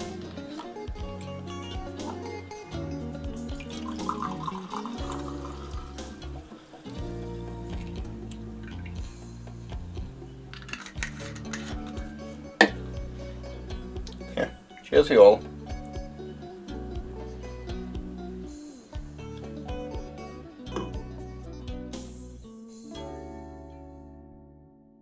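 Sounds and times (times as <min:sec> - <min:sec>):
background music: 0:00.0 - 0:25.0
wine pouring into glass: 0:03.3 - 0:07.0, 0:07.7 - 0:09.0.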